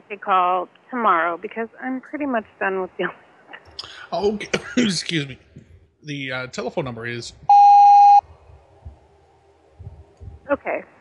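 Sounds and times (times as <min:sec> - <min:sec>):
censor bleep: 0:07.5 - 0:08.2.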